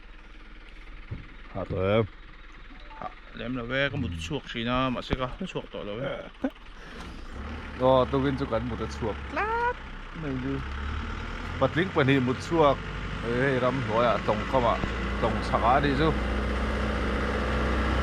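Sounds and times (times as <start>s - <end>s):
steady low rumble: 1.0s - 7.4s
men talking: 1.6s - 2.1s, 2.9s - 6.5s, 7.8s - 9.3s, 10.2s - 10.7s, 11.6s - 16.2s.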